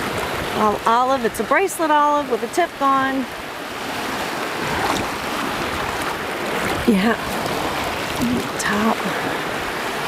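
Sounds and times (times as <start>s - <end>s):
small waves washing: 0.0s - 10.0s.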